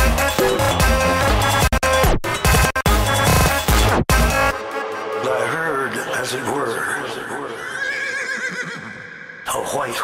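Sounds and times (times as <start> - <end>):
horse whinny sample: 7.7 - 9.3.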